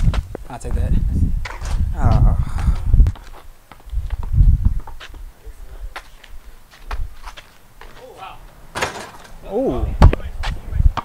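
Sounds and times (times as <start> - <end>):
footsteps on concrete: 0.0 - 8.4, 10.0 - 10.7.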